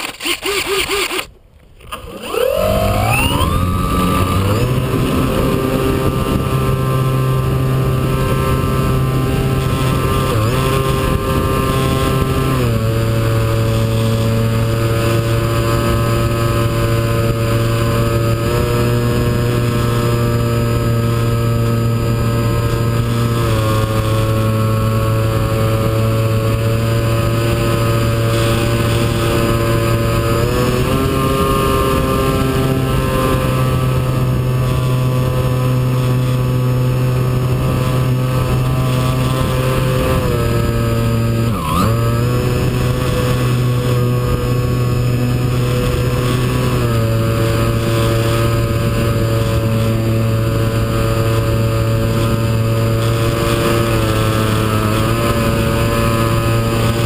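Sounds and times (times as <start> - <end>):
model plane motor droning: 0.0 - 57.0.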